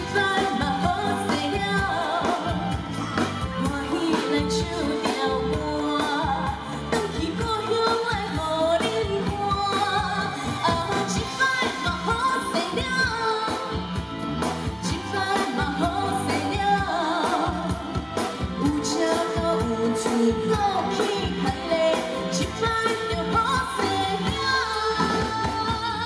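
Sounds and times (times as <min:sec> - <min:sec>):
backing music with steady beat: 0:00.0 - 0:26.0
woman singing pop song: 0:00.0 - 0:26.0.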